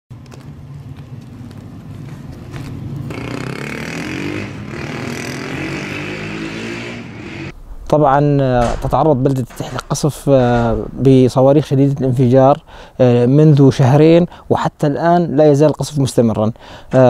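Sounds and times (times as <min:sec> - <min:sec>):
vehicle engine revving: 0:03.0 - 0:07.6.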